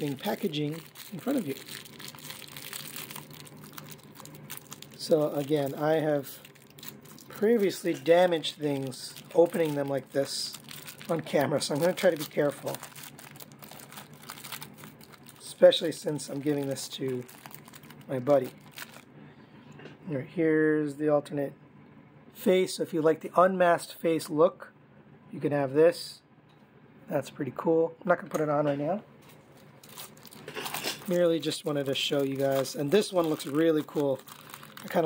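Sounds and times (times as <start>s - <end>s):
toy packaging crinkling: 0.0s - 19.0s, 29.8s - 35.0s.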